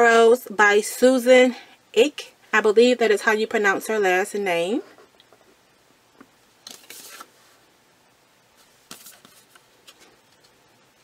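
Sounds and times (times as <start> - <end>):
paper and plastic packaging rustling: 6.6 - 7.4, 8.6 - 10.6.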